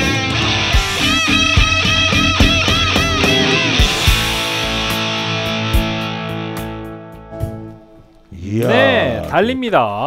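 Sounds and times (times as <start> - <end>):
electric guitar chord ringing: 0.0 - 7.3.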